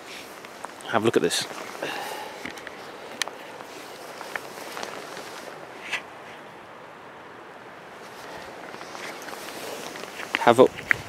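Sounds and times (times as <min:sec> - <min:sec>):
soft clicks and rustles: 0:00.0 - 0:06.5, 0:08.0 - 0:11.0
breezy outdoor ambience: 0:00.0 - 0:11.0.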